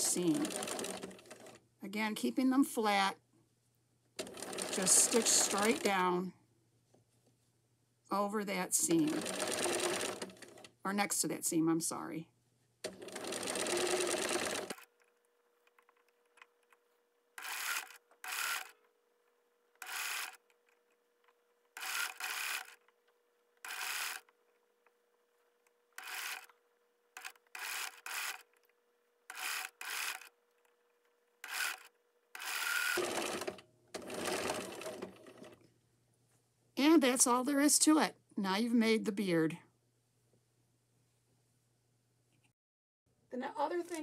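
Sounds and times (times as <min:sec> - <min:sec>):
sewing machine stitching: 0:00.0 - 0:01.6, 0:04.2 - 0:06.1, 0:08.8 - 0:10.8, 0:12.8 - 0:15.0, 0:17.4 - 0:18.8, 0:19.8 - 0:20.5, 0:21.7 - 0:22.9, 0:23.6 - 0:24.3, 0:26.0 - 0:26.6, 0:27.2 - 0:28.7, 0:29.3 - 0:30.4, 0:31.4 - 0:35.6.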